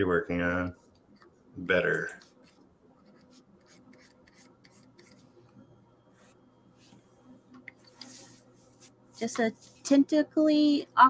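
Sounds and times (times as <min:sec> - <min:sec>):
stylus scratching on drawing tablet: 0:02.2 - 0:05.4.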